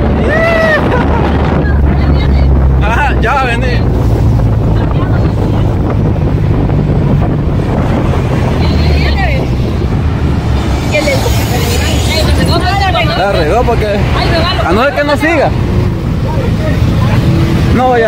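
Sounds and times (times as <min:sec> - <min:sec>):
engine and tyre rumble: 0:00.0 - 0:18.0
wind buffeting microphone: 0:00.0 - 0:18.0.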